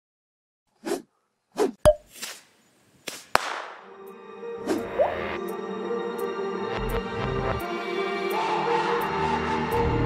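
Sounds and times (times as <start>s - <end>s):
short swishes: 0.8s - 3.4s.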